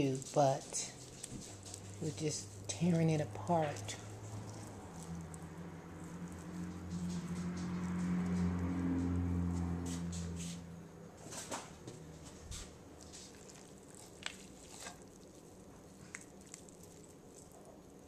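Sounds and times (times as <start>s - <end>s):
soft wet squishes: 0.0s - 9.2s, 12.2s - 18.0s
steady low hum: 0.0s - 18.0s
hands tearing chicken: 13.1s - 17.7s.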